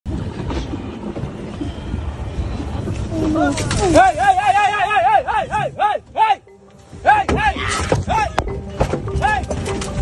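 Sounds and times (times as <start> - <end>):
vehicle engine rumbling: 0.0 - 7.2.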